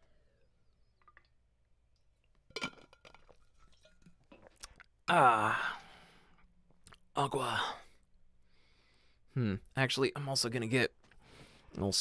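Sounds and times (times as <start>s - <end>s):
wet mouth clicks: 4.5s - 4.9s.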